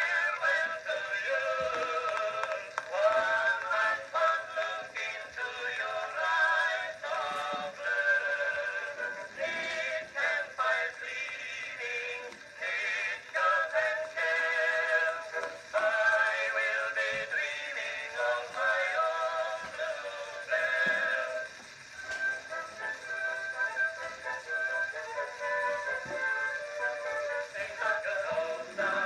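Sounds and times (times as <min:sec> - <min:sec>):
chorus singing on phonograph: 0:00.0 - 0:29.0.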